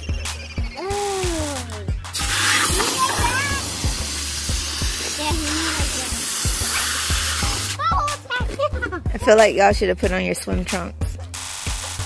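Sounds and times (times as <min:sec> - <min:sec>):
background music with steady beat: 0:00.0 - 0:12.0
hose spraying water into bucket: 0:02.1 - 0:07.8, 0:11.3 - 0:12.0.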